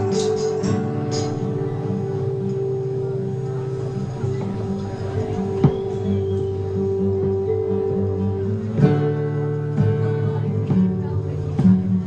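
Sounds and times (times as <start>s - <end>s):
acoustic guitars ringing chord: 0.0s - 12.0s.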